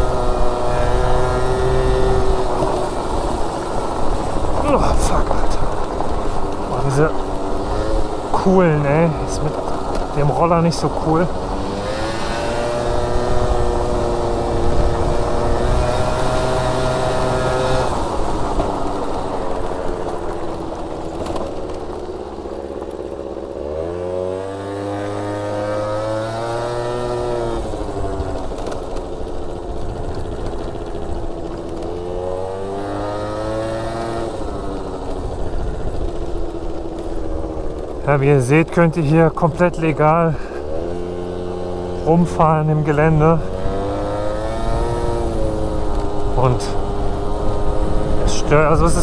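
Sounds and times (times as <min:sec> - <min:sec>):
scooter engine revving: 0:00.0 - 0:49.0.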